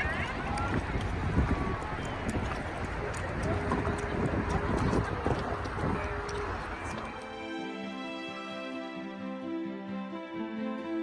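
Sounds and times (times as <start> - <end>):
wind rumbling on microphone: 0.0 - 7.3
water washing past hull: 0.0 - 7.9.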